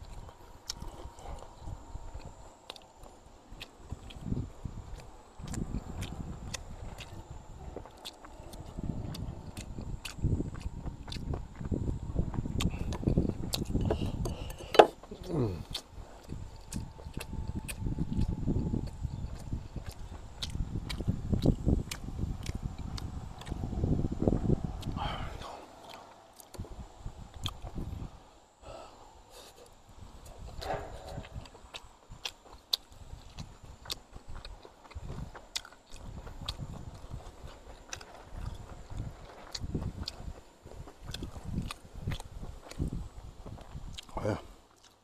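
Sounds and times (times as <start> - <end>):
man chewing food: 0.0 - 45.0
wet lip-smacking clicks: 2.2 - 7.2, 7.9 - 11.7, 15.6 - 23.7, 27.3 - 27.8.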